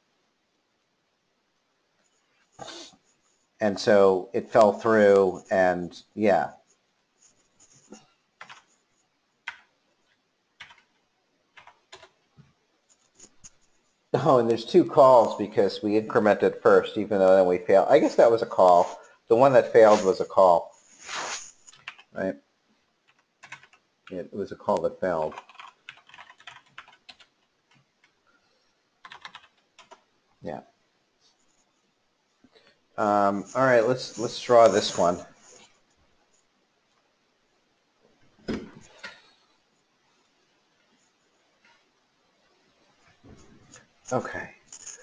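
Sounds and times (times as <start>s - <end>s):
computer keyboard typing: 8.4s - 8.7s, 9.4s - 9.7s, 10.6s - 12.2s, 21.7s - 22.1s, 23.1s - 23.9s, 25.2s - 28.2s, 29.0s - 30.1s.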